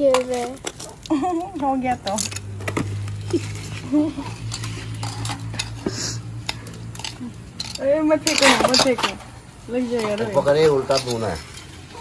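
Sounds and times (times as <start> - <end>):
knife blades scraping concrete: 2.0 - 9.2.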